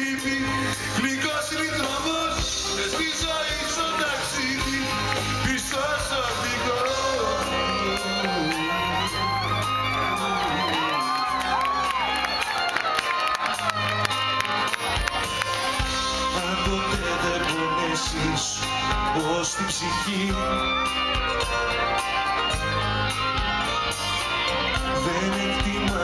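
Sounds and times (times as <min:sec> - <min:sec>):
crowd singing along: 0:00.0 - 0:12.4, 0:14.8 - 0:26.0
live band with electric guitar: 0:00.0 - 0:26.0
audience cheering: 0:01.0 - 0:26.0.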